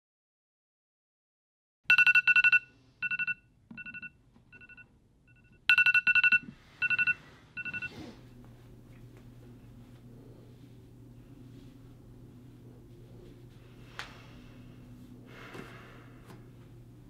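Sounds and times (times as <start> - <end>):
trilling electronic phone ring: 1.9 - 7.9
low room hum: 1.9 - 17.0.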